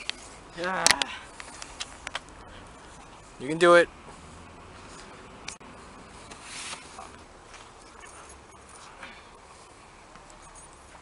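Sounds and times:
quiet outdoor background noise: 0.0s - 11.0s
scuffing and rustling: 4.0s - 11.0s.

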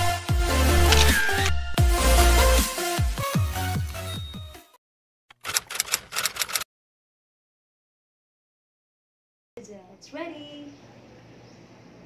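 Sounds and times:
electronic intro music: 0.0s - 3.8s
rapid sharp clicks: 5.3s - 6.6s.

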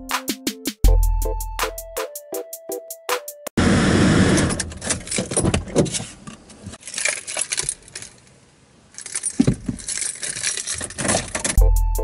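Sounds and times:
rustling handling noise: 4.8s - 11.6s
small metallic jangles: 6.8s - 11.6s.

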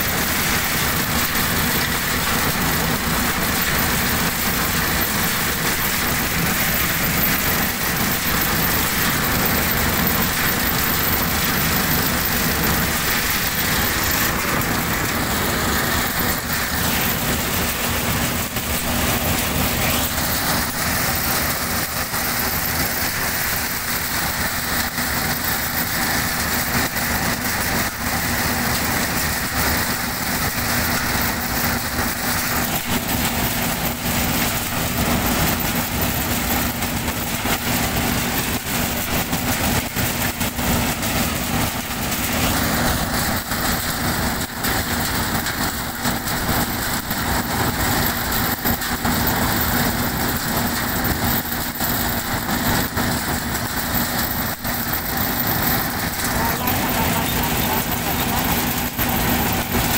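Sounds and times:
threshing machine running: 0.0s - 59.9s.

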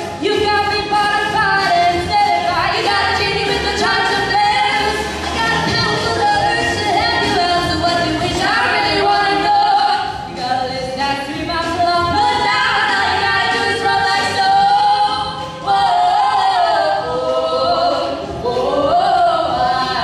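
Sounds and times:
young women singing duet: 0.0s - 20.0s.

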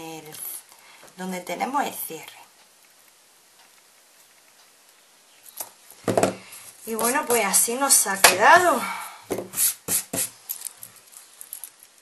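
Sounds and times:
hands handling bracelet: 10.5s - 12.0s.

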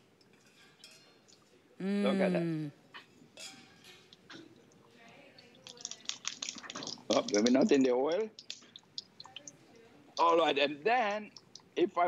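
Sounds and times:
water draining into a pot: 4.1s - 11.8s
water spattering clicks: 5.4s - 11.8s.

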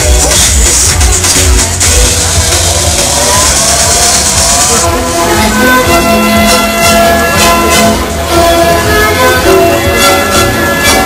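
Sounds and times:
fairground ride hissing: 0.0s - 11.0s.

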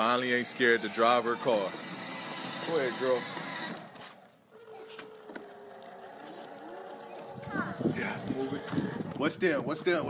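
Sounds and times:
toy car motor whine: 0.0s - 9.2s
wheels rolling over stone pavers: 0.0s - 10.0s.

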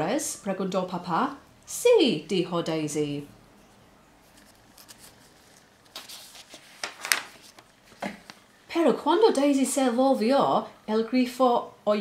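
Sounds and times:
paper crinkle: 4.2s - 8.5s
paper page rustling: 4.2s - 8.5s.

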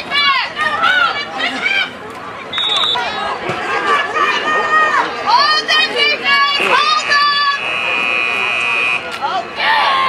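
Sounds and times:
crowd shout: 0.0s - 10.0s
referee's whistle long blast: 2.5s - 3.1s.

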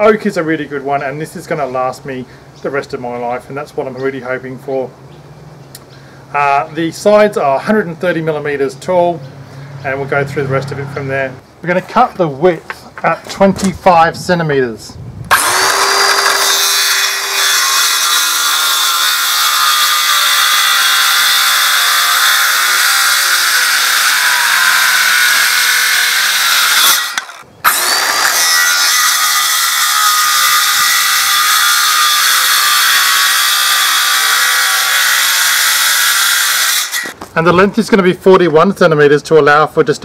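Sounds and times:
circular saw cutting wood: 15.3s - 37.2s.

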